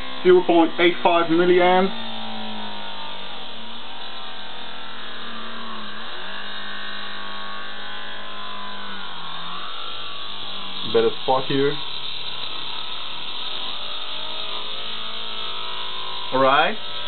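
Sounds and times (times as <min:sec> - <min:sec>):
electric humming buzz: 0:00.0 - 0:17.0.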